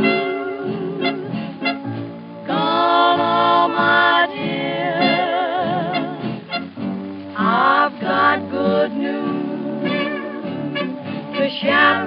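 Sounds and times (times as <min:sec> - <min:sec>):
dance-band jazz from old record: 0:00.0 - 0:12.0.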